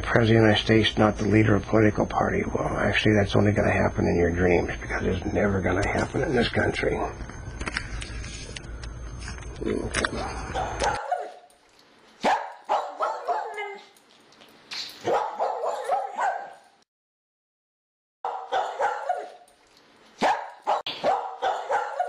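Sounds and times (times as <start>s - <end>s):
dog yipping and barking: 10.5s - 11.5s, 12.2s - 14.0s, 15.0s - 16.7s, 18.3s - 19.5s, 20.2s - 22.0s.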